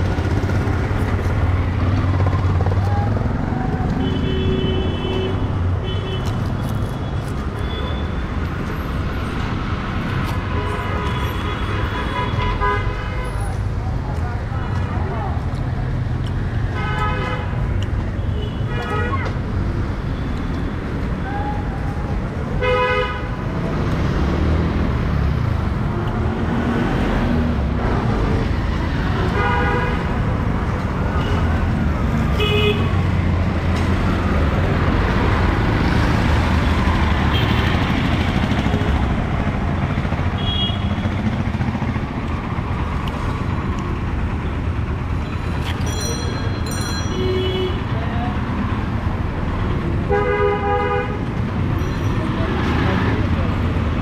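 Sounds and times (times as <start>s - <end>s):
rumble of traffic engines: 0.0s - 54.0s
vehicle horns honking: 22.6s - 23.4s, 29.3s - 30.1s, 40.4s - 41.0s, 50.1s - 51.2s.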